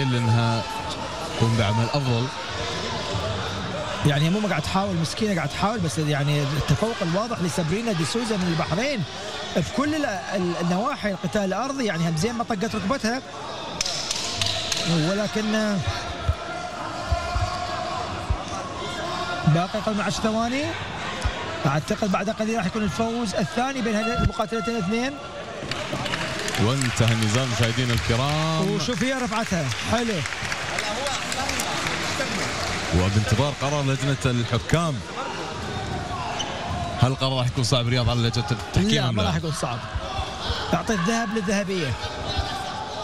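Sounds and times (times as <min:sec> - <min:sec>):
arena background noise: 0:00.0 - 0:43.0.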